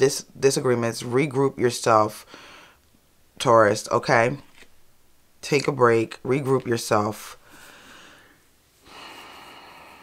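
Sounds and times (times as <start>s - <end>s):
faint breath through the nose: 2.3s - 2.8s, 7.4s - 10.0s.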